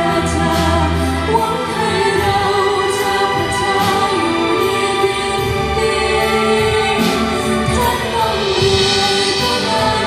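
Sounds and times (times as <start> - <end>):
string orchestra: 0.0 - 10.0
woman singing: 0.0 - 10.0.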